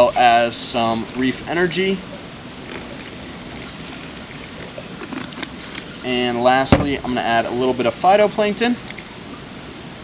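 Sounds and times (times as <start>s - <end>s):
liquid trickling into plastic container: 0.8s - 6.2s.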